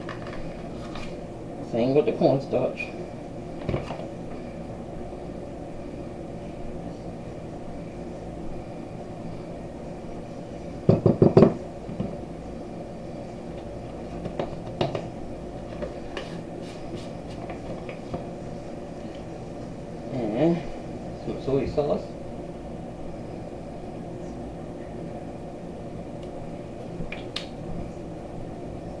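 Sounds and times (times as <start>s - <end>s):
low room hum: 0.0s - 29.0s.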